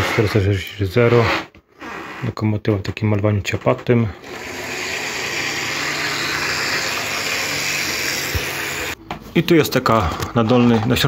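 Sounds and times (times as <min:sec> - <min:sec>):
model train motor whirring: 0:04.2 - 0:09.0.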